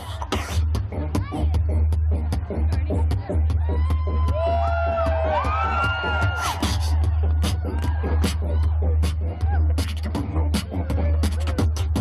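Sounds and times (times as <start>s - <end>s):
beatboxing into a microphone: 0.0s - 12.0s.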